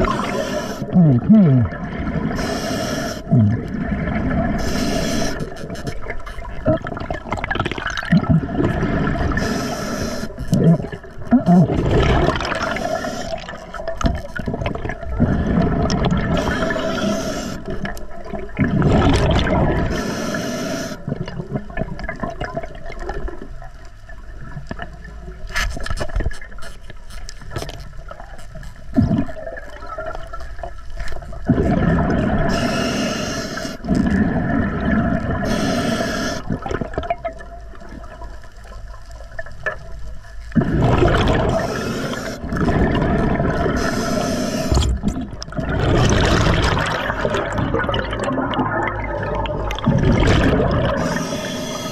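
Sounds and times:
rush of bubbles underwater: 0:00.0 - 0:26.3, 0:28.9 - 0:51.9
regulator air hiss: 0:00.1 - 0:00.9, 0:02.4 - 0:03.3, 0:04.6 - 0:05.5, 0:09.4 - 0:10.4, 0:16.4 - 0:17.7, 0:19.9 - 0:21.0, 0:32.5 - 0:33.8, 0:35.4 - 0:36.5, 0:41.6 - 0:42.4, 0:43.8 - 0:44.8, 0:51.0 - 0:51.9.

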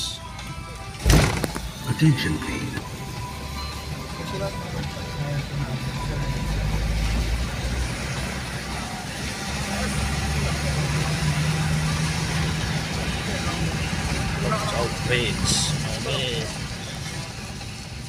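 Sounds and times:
low engine hum: 0:00.0 - 0:18.0
tyre noise on wet road: 0:01.0 - 0:02.1, 0:04.2 - 0:18.0.

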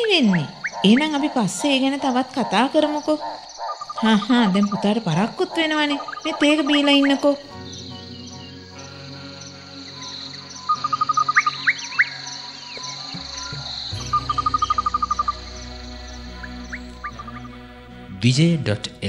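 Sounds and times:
insects chirping: 0:00.0 - 0:18.4
sustained low music notes: 0:07.4 - 0:19.0
rapid trill with rising chirps: 0:09.6 - 0:17.6.

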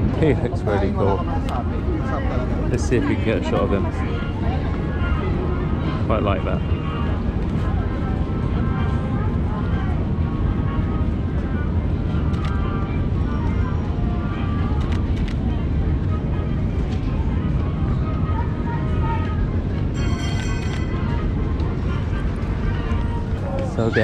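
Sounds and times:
indistinct voices of passers-by: 0:00.0 - 0:24.0
low city rumble: 0:00.0 - 0:24.0.

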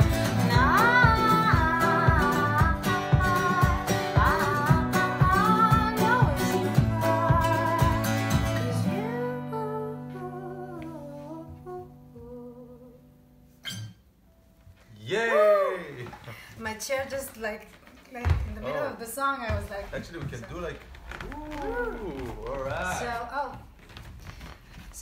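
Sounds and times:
acoustic guitar and ukulele strumming: 0:00.0 - 0:10.3, 0:13.4 - 0:14.0
woman singing: 0:00.0 - 0:13.1.

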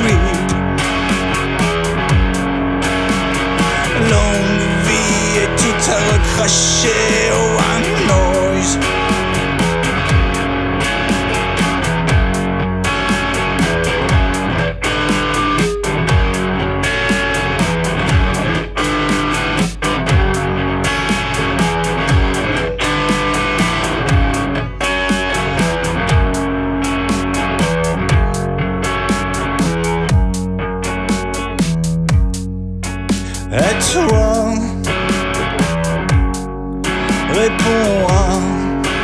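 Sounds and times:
deep kick drum: 0:00.0 - 0:05.1, 0:07.8 - 0:10.7, 0:11.7 - 0:14.8, 0:15.8 - 0:16.6, 0:17.6 - 0:18.7, 0:19.8 - 0:26.7, 0:27.6 - 0:28.8, 0:30.0 - 0:30.6, 0:31.6 - 0:36.6, 0:37.2 - 0:38.6
electric guitar: 0:00.0 - 0:39.0.

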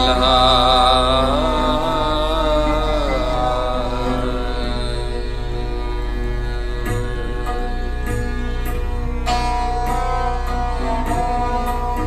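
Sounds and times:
bowed strings gliding melody: 0:00.0 - 0:12.0
steady low drone: 0:00.0 - 0:12.0.

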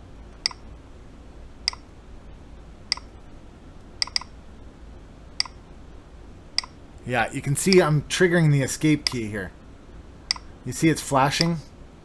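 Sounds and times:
light sharp clicks of wire tapping: 0:10.3 - 0:10.5.

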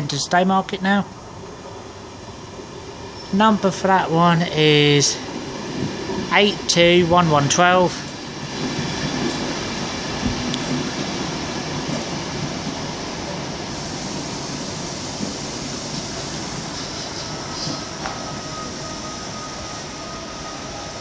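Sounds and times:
train wheels rumbling on rails: 0:00.1 - 0:21.0.

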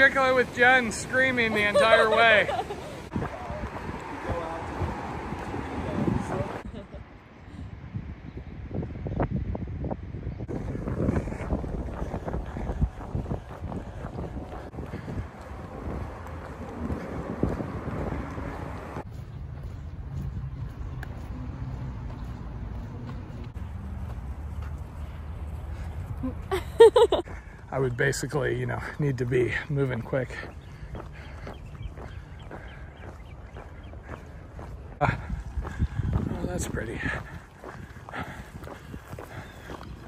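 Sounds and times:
wind buffeting microphone: 0:02.2 - 0:06.8, 0:07.4 - 0:23.6, 0:26.9 - 0:40.0.

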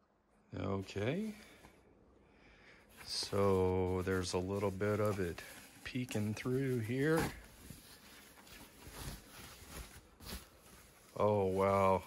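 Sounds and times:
foam sheet rustling: 0:03.0 - 0:12.0.

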